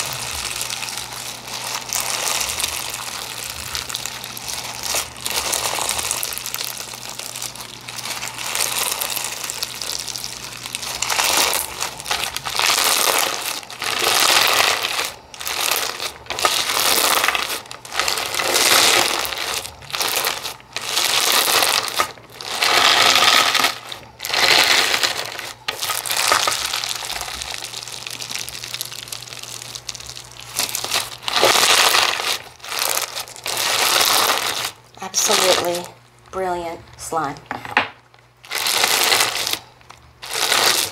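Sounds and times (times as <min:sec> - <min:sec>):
slime crackling and crunching: 0:00.0 - 0:37.1, 0:38.0 - 0:40.9.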